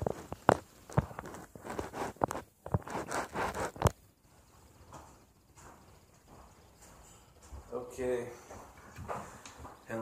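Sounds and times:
rustling and scraping: 0.0 - 7.7.

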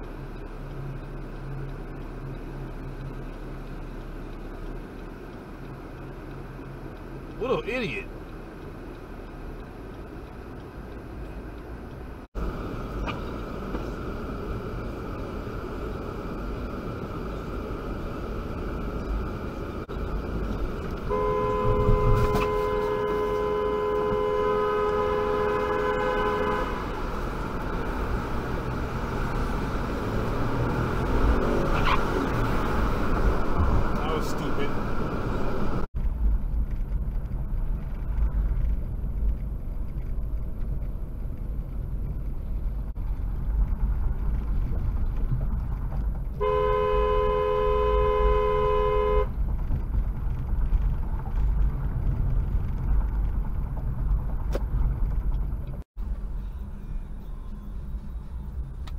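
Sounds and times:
road rumble inside moving car: 0.0 - 58.9
two-tone car horn: 21.0 - 27.1, 46.4 - 49.4.

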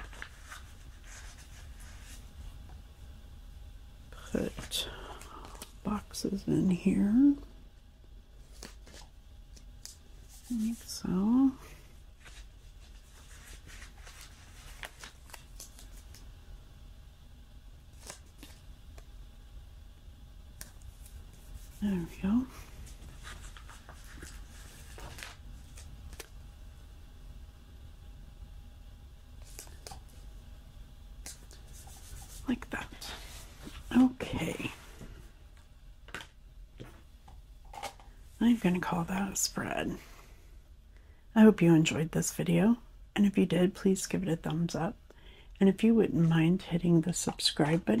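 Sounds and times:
paper rustling: 0.0 - 2.2, 8.4 - 10.9, 12.2 - 16.2, 17.9 - 18.6, 22.8 - 26.3.

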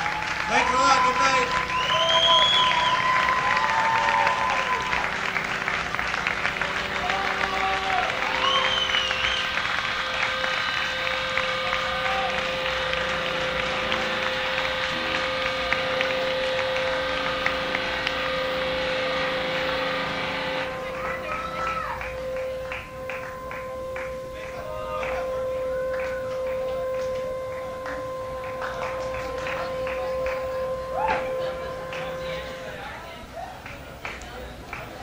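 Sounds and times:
whoops and whistles: 0.0 - 5.2, 7.2 - 16.4
audience applauding: 0.0 - 35.0
steady pitched hum: 0.0 - 35.0.

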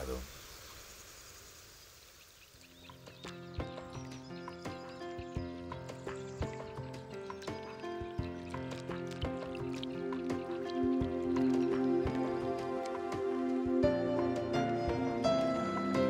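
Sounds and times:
background music with ringing notes: 2.8 - 16.0.

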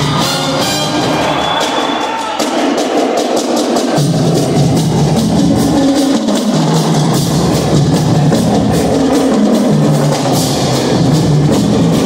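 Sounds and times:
low brass notes: 0.0 - 1.4
bass drums: 0.0 - 12.0
snare drums beat: 0.0 - 12.0.

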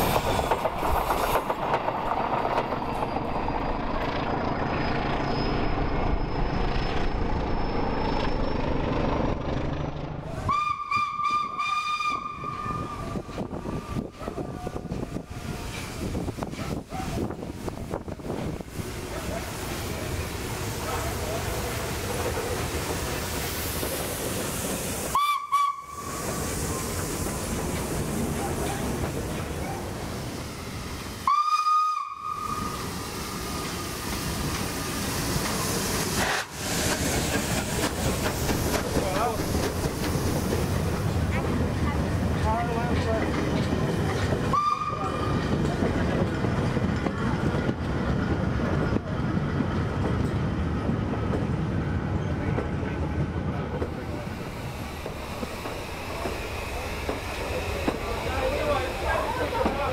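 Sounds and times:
train running with steam hissing: 0.0 - 59.9
steam locomotive whistle: 10.4 - 14.0, 25.1 - 26.8, 31.2 - 32.9, 44.5 - 45.4.

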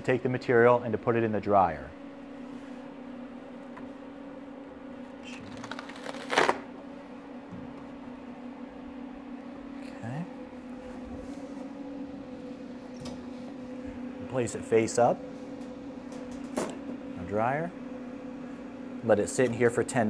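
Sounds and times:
electrical hum: 0.0 - 20.0
plastic sheet crackling: 5.2 - 6.7.

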